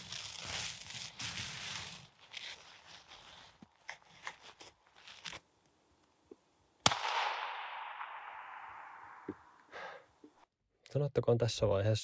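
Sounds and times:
rifle shot with echo: 6.8s - 9.6s.

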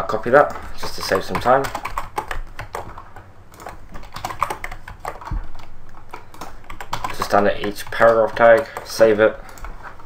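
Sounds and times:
computer keyboard clicks: 0.4s - 9.7s.

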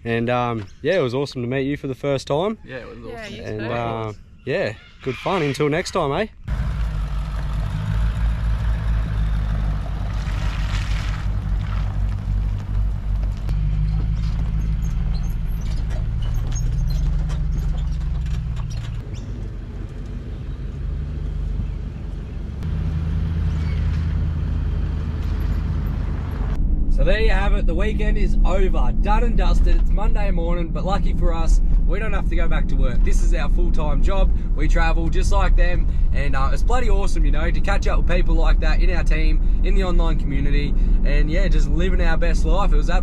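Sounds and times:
car engine running: 6.4s - 43.0s.

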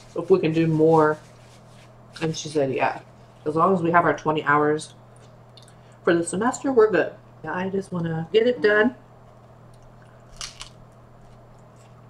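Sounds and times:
low steady hum: 0.0s - 12.0s
pizza crust crunching: 10.2s - 12.0s.

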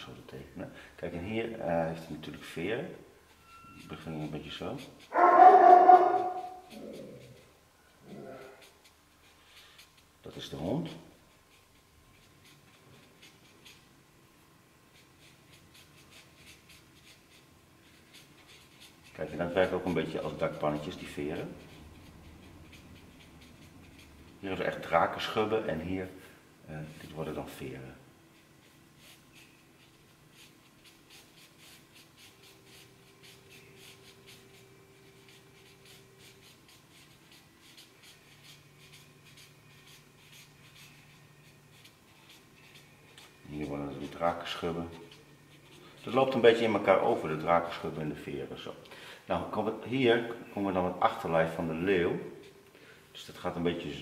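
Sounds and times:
marker pen scratching on paper: 3.3s - 14.0s, 14.9s - 25.4s, 28.3s - 48.0s.

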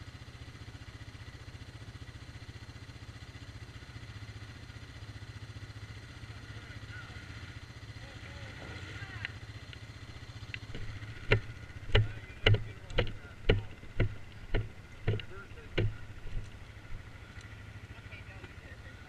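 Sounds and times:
vehicle engine idling: 0.0s - 19.0s
sharp knocks: 10.7s - 16.5s.

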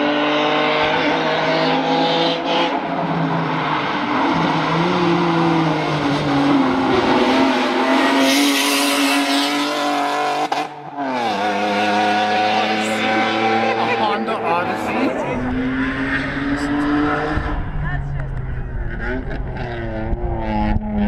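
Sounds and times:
minivan engine passing: 11.5s - 19.9s.

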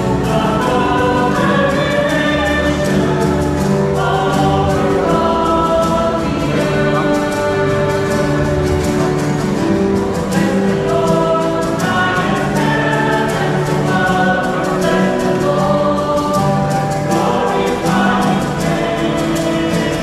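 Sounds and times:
choir singing a hymn: 0.0s - 20.0s
instrumental accompaniment: 0.0s - 20.0s.

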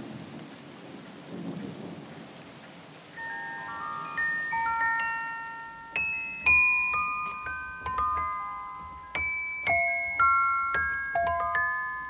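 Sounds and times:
low rumbling hiss: 0.0s - 12.0s
music box playing: 3.2s - 12.0s.

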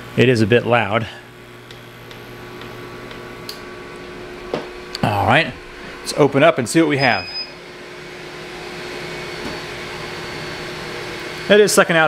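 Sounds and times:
exhaust fan air rush: 0.0s - 12.0s.

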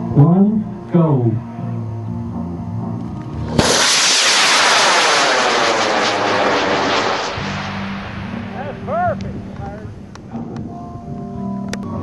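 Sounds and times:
rocket motor roaring: 3.6s - 9.6s.

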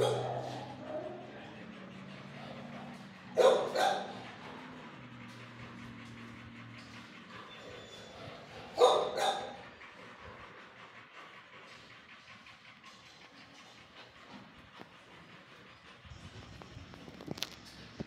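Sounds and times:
dog barking: 0.0s - 1.3s, 3.4s - 4.2s, 8.8s - 9.6s.

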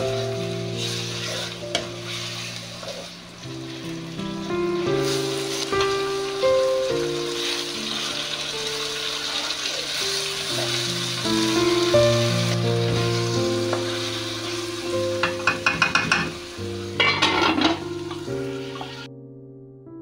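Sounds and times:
vegetables sizzling in hot oil: 0.0s - 19.1s
spatula striking pan: 15.2s - 16.4s, 17.0s - 18.3s
steel lid clattering: 15.2s - 16.4s, 17.0s - 17.9s.

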